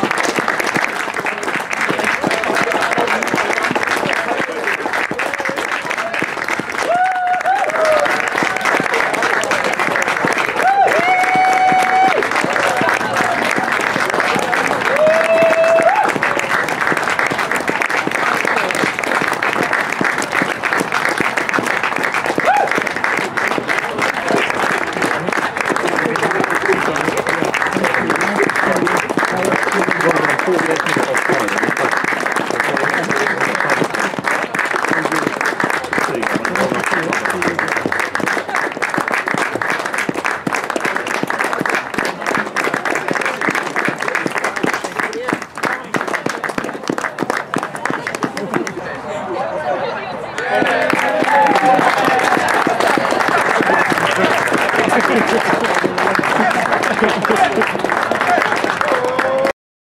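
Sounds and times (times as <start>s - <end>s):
people clapping: 0.0s - 49.0s, 50.3s - 59.6s
voices: 22.4s - 59.5s.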